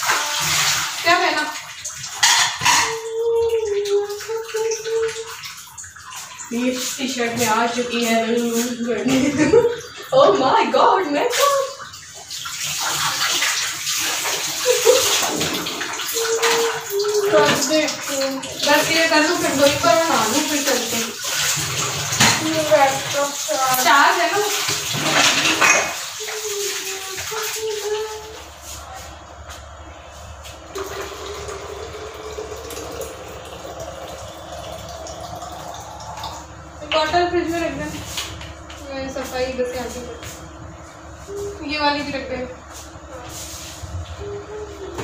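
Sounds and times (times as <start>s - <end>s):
tap water running into sink: 0.0s - 28.8s, 30.4s - 40.4s
dishes being washed: 0.0s - 45.0s
low hum: 28.1s - 37.9s
tap running into sink: 30.7s - 37.2s.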